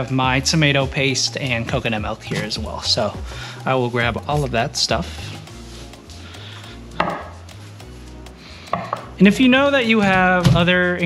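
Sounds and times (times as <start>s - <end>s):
metal can knocking on wood: 7.0s - 7.4s, 8.7s - 9.2s.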